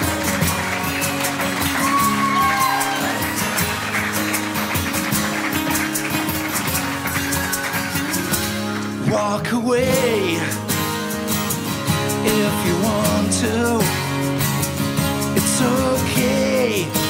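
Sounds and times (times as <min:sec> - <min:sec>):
hand percussion beat: 0:00.0 - 0:09.1, 0:09.8 - 0:17.0
audience voices: 0:00.0 - 0:12.1
acoustic guitars strummed: 0:00.0 - 0:17.0.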